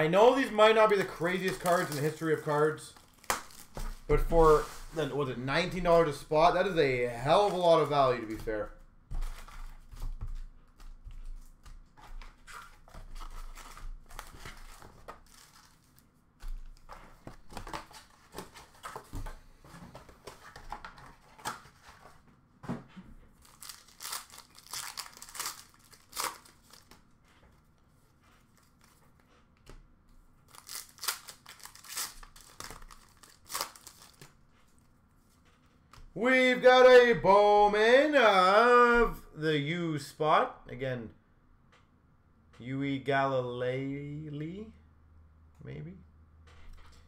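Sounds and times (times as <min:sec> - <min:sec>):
card pack wrappers tearing: 0:00.2 - 0:05.2, 0:12.5 - 0:16.0, 0:23.4 - 0:27.0, 0:30.5 - 0:34.3
cards shuffling: 0:00.2 - 0:05.2, 0:05.8 - 0:22.2, 0:23.4 - 0:29.8, 0:30.5 - 0:36.1.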